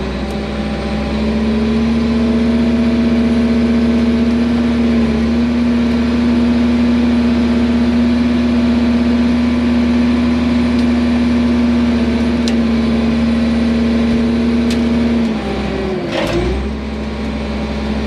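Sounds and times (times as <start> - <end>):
bulldozer diesel engine droning: 0.0 - 18.0.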